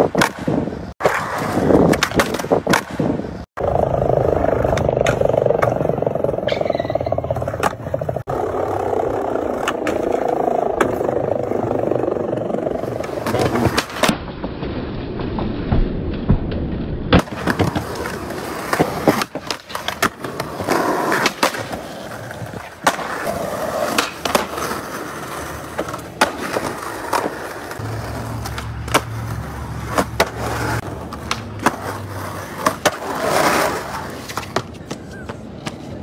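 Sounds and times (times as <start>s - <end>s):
skateboard pops and clacks: 0.0s - 3.3s, 9.5s - 11.1s, 12.9s - 14.2s, 15.7s - 25.0s, 25.7s - 36.0s
skateboard wheels rolling on concrete: 0.0s - 36.0s.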